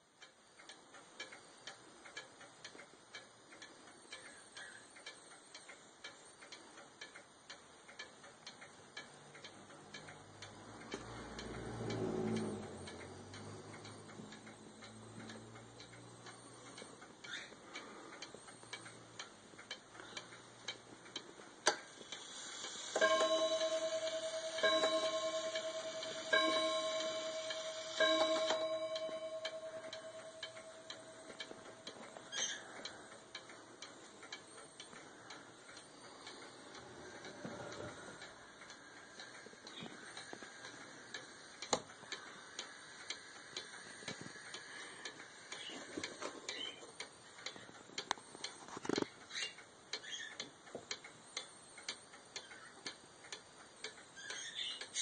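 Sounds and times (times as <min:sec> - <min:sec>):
clock ticking: 0:00.0 - 0:55.0
clock gong striking: 0:23.0 - 0:31.4.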